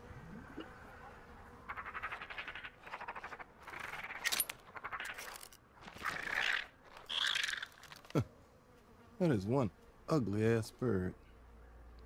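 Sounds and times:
creature screeching calls: 6.0s - 7.9s.

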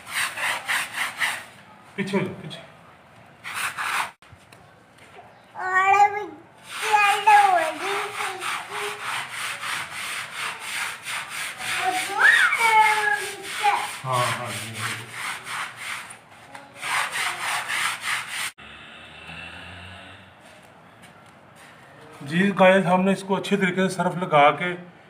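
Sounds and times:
brush scrubbing wet carpet: 0.0s - 1.5s, 6.6s - 18.6s
small child's voice: 5.5s - 9.2s, 11.6s - 14.1s.

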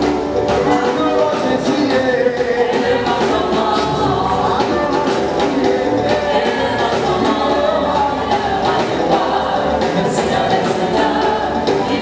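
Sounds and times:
drums beating: 0.0s - 12.0s
gospel choir singing: 0.0s - 12.0s
live band: 0.0s - 12.0s.

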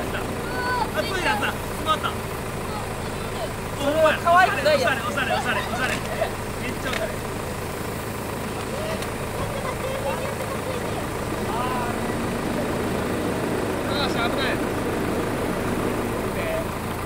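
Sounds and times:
faint voices: 0.0s - 14.8s.

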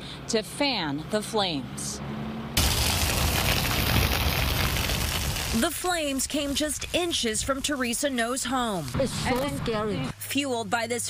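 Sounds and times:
grass fire crackling: 2.6s - 9.6s.

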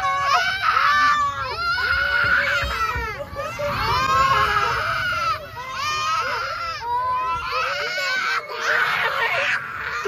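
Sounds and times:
girl crying with high wails: 0.0s - 10.0s.

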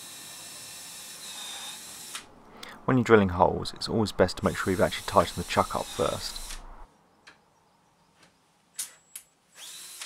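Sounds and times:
drill bit cutting hiss: 4.5s - 6.6s
cordless drill whine: 4.7s - 6.7s, 9.5s - 10.0s.

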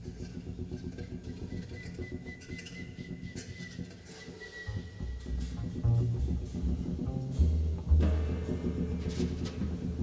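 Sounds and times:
double bass: 0.0s - 10.0s
drums: 0.0s - 10.0s.

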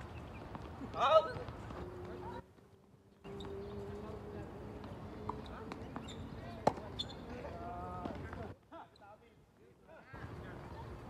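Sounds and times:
tennis ball striking racket: 4.8s - 7.1s.

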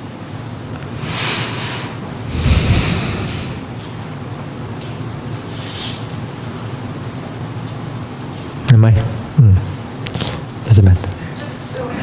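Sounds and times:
air rushing across microphone: 1.0s - 3.8s
low rumble: 2.2s - 3.8s.

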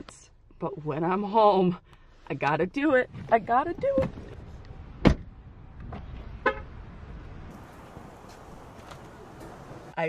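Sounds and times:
low outdoor background: 0.0s - 10.0s.

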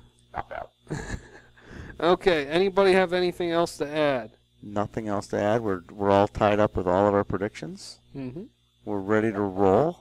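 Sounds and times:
person chuckling: 0.4s - 1.8s.

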